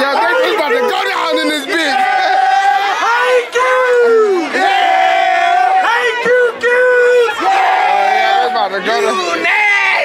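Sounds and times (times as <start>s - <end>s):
crowd shouting drawn-out calls: 0.0s - 10.0s.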